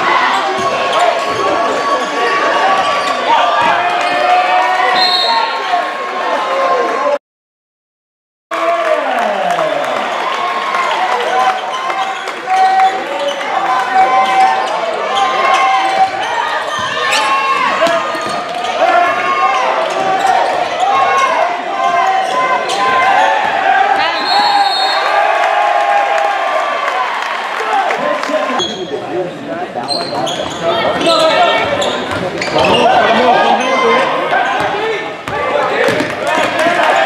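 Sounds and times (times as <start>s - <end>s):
voices echoing in gym: 0.0s - 7.2s, 8.6s - 37.0s
basketball bouncing on court: 34.6s - 36.7s.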